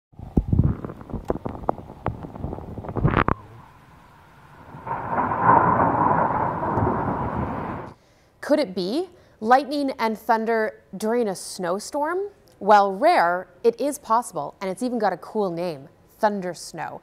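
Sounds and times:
thunder rumble: 0:00.2 - 0:08.0
sharp thunder cracks: 0:02.3 - 0:08.0.

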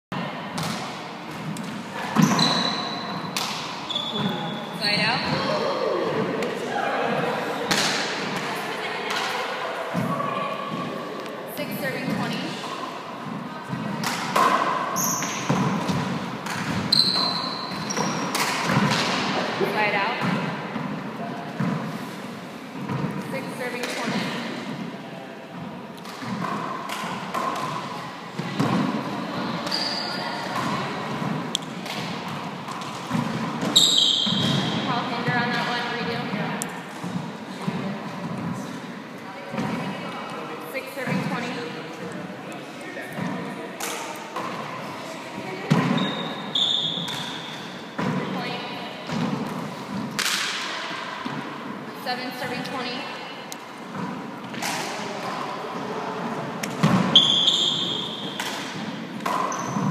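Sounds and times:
sneaker squeaks on wooden floor: 0:01.4 - 0:05.7, 0:13.7 - 0:19.4, 0:29.5 - 0:36.3, 0:45.5 - 0:49.5, 0:56.8 - 0:59.9
people talking: 0:04.1 - 0:14.6, 0:19.3 - 0:20.5, 0:23.2 - 0:25.4, 0:28.0 - 0:32.0, 0:34.5 - 0:36.7, 0:37.5 - 0:46.2, 0:48.0 - 0:49.2, 0:52.0 - 0:53.3.

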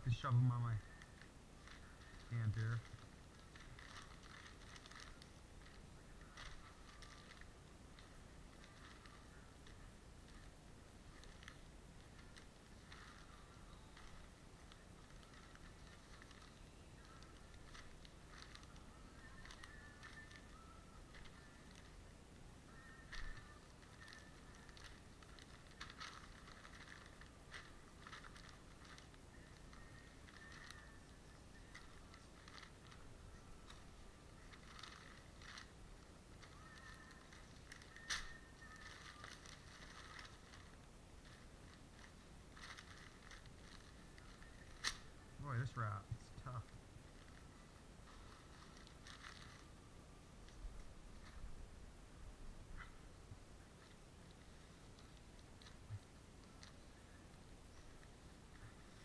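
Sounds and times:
newspaper crinkling and rustling: 0:00.1 - 0:51.7, 0:52.8 - 0:59.0.

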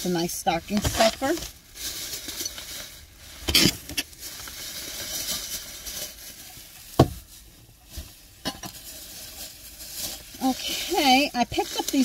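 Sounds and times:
plastic bags rustling: 0:00.0 - 0:12.0.

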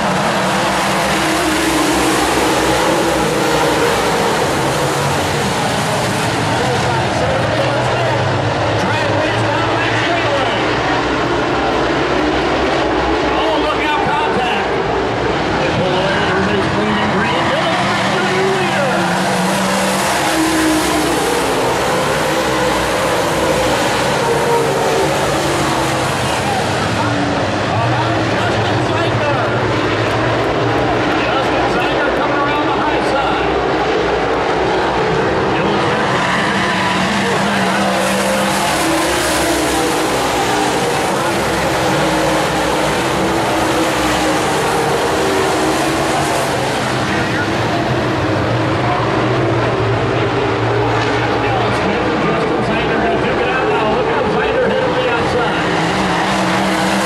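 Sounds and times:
race car engines droning: 0:00.0 - 0:57.0.

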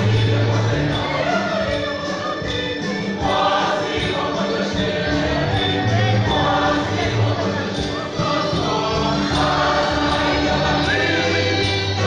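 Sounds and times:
congregation and choir singing hymn: 0:00.0 - 0:12.0.

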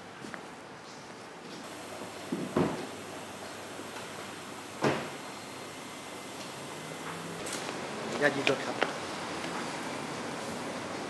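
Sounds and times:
steady background hiss: 0:00.1 - 0:11.0
car door shutting: 0:01.7 - 0:03.2, 0:03.8 - 0:05.4.

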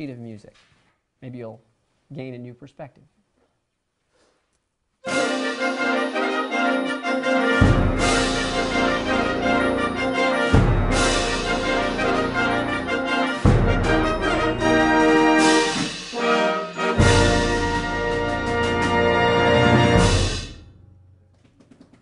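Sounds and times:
concert band playing: 0:05.1 - 0:20.6.

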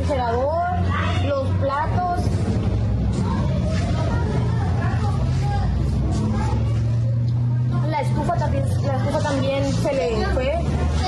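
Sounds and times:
faint indistinct voices: 0:00.0 - 0:11.0
low engine hum: 0:00.0 - 0:11.0.

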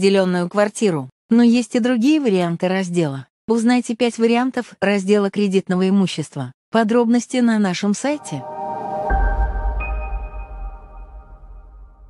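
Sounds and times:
electronic chord of ringing tones: 0:08.2 - 0:11.7
deep low rumble: 0:08.4 - 0:12.0.

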